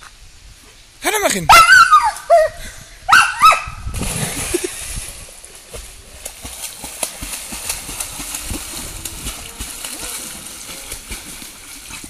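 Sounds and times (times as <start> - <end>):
dog splashing through water: 5.6 - 12.0.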